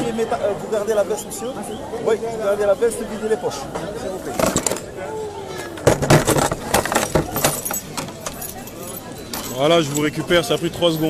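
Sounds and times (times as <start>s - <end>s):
keys clinking: 6.3s - 10.2s.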